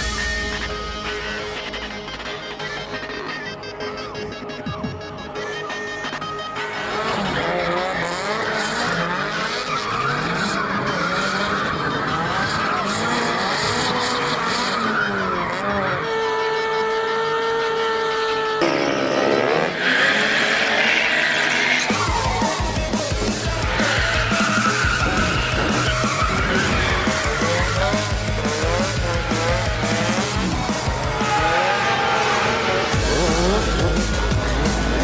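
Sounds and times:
tyres squealing: 1.5 - 17.0, 17.6 - 35.0
car engine revving: 6.2 - 35.0.

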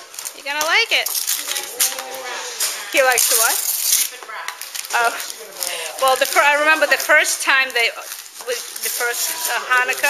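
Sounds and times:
wrapping paper rustling and tearing: 0.0 - 10.0.

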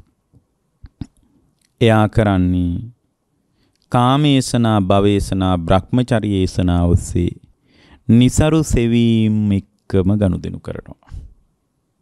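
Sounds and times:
mouth clicks: 0.8 - 1.8
man speaking into microphone: 1.8 - 3.0, 3.9 - 7.4, 8.1 - 11.3.

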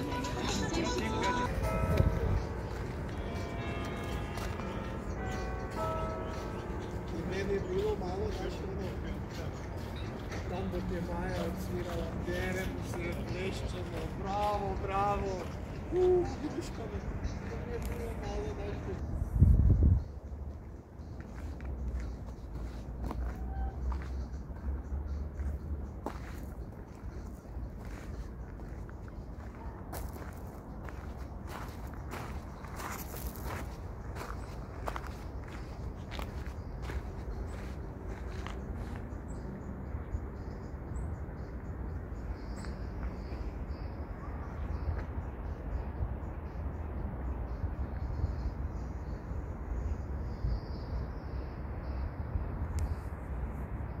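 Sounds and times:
footsteps outdoors: 0.0 - 46.6
wind rumble on microphone: 19.0 - 20.4.

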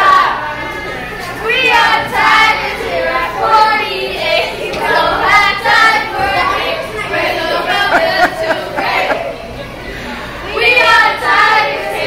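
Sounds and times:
children singing: 0.0 - 9.7, 10.3 - 12.0.

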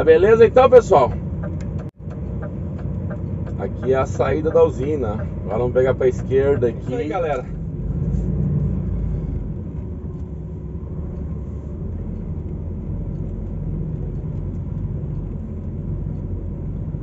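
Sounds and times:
truck diesel engine rumble: 0.0 - 17.0.

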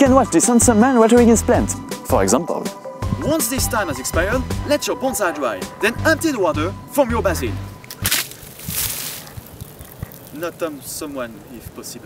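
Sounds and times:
water splashing: 7.8 - 11.6
hissing water spray: 8.1 - 11.6.

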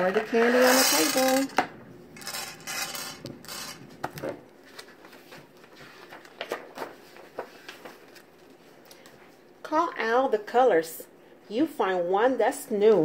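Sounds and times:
candies rattling on glass: 0.5 - 1.6, 2.2 - 3.8.

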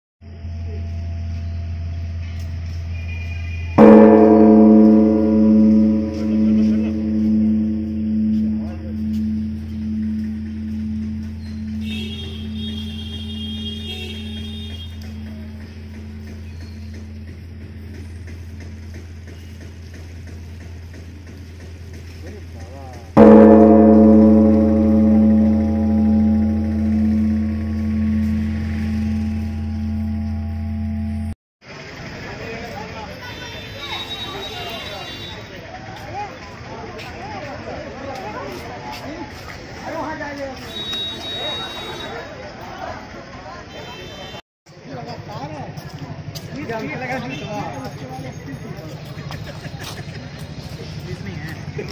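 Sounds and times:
street and crowd noise: 0.2 - 51.9
temple bell ringing: 3.7 - 19.6, 23.2 - 31.4.

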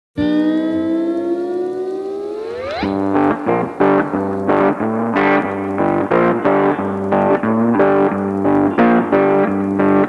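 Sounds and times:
rising electronic tone: 0.2 - 4.8.

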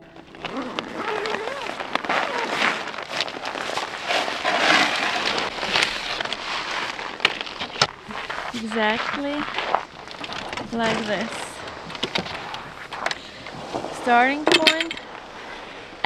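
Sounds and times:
bag unzipping: 0.2 - 14.4
rustling fabric: 0.2 - 14.4.

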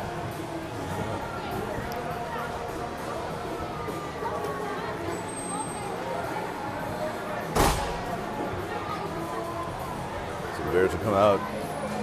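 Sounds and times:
sharp bang with echo: 7.6 - 8.2.

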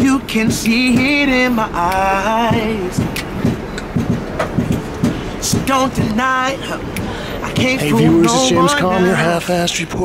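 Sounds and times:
low knocks: 0.0 - 7.1
vehicle rumbling: 0.0 - 10.0.

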